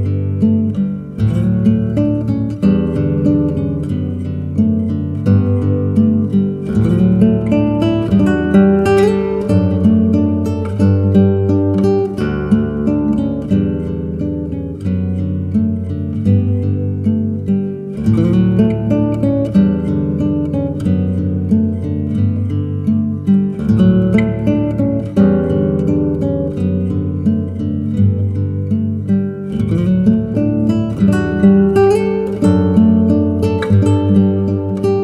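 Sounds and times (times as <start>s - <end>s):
solo acoustic guitar music: 0.0s - 35.0s.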